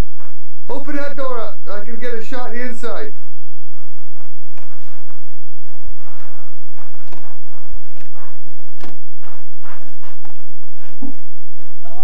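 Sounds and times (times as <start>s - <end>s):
dull thumps: 4.0s - 11.8s.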